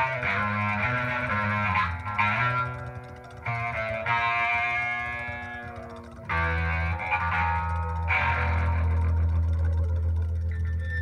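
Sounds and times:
electric bass: 0.0s - 11.0s
keyboards playing held chords: 0.0s - 11.0s.

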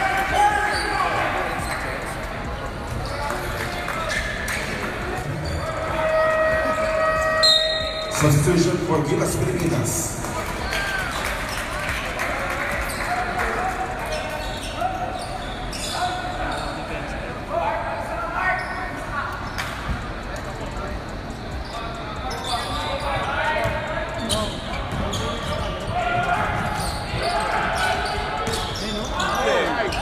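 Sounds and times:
crowd voices and chatter: 0.0s - 30.0s.

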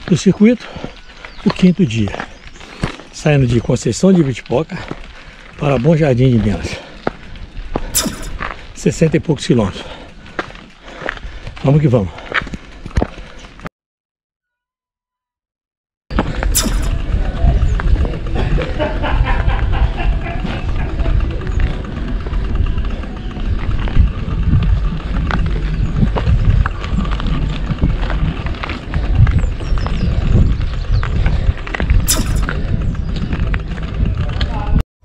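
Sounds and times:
bicycle knocks and rattles: 6.4s - 8.8s, 16.1s - 34.6s
wind rumble on microphone: 16.1s - 34.8s.

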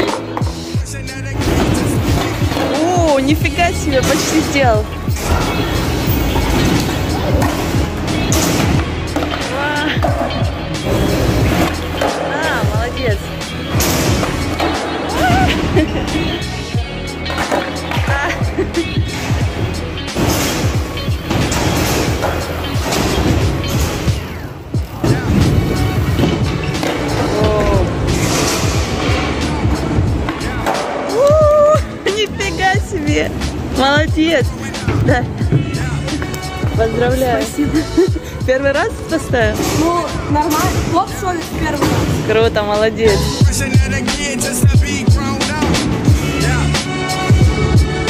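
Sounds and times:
background music: 0.0s - 48.0s
skateboard wheels rolling on concrete: 0.0s - 48.0s.

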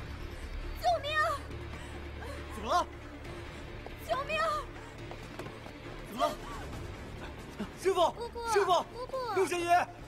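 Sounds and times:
film score music: 0.0s - 10.0s
woman shouting for help: 0.8s - 1.6s, 4.0s - 4.8s, 8.1s - 9.7s.

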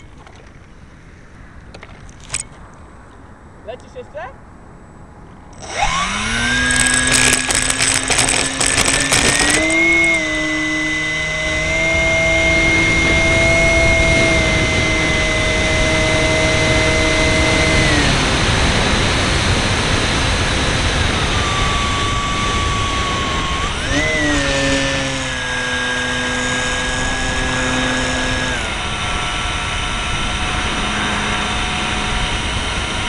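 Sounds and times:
electric motor high whine: 5.5s - 33.0s
rattle: 5.6s - 12.6s, 21.3s - 33.0s
wind rushing on microphone: 11.5s - 33.0s.

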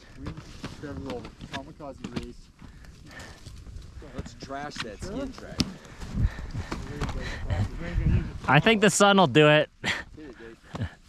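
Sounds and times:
skis and poles scuffing snow: 0.2s - 2.0s.

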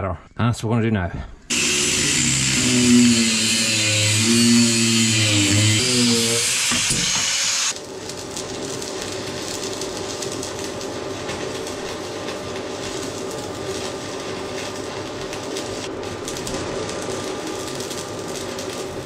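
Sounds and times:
angle grinder cutting steel: 1.5s - 7.8s
welding arc crackling hiss: 1.5s - 19.0s.

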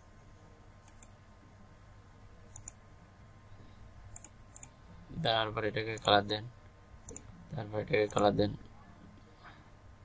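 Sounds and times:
man speaking: 7.5s - 8.6s.

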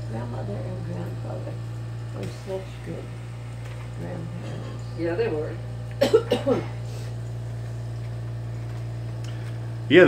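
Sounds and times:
air conditioner humming: 0.0s - 10.0s.

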